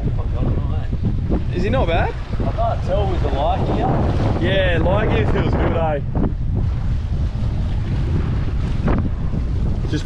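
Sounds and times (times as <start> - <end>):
waves splashing against hull: 0.0 - 10.0
wind buffeting microphone: 0.0 - 10.0.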